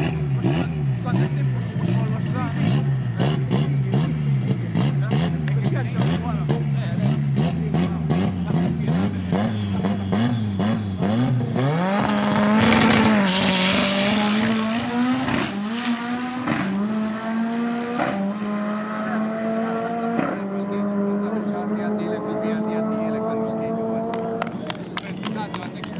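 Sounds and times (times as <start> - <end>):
car engine revving and accelerating: 0.0 - 25.5.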